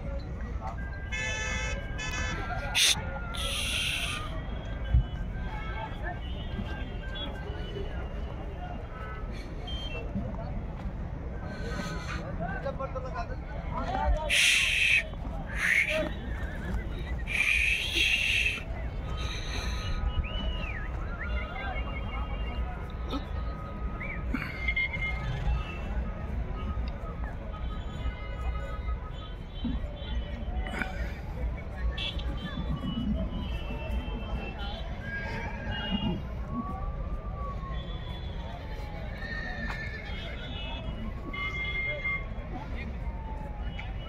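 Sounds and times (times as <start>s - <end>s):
faint voices: 0.0s - 44.0s.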